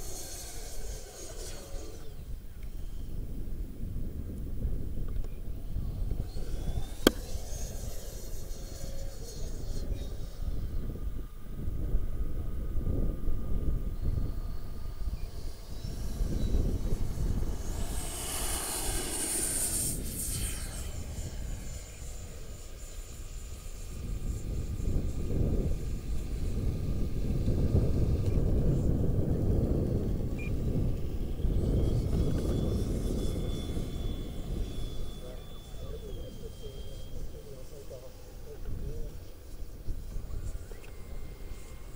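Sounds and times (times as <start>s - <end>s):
electric ducted fans whining: 0.0s - 41.9s
gusty low rumble: 11.6s - 32.9s.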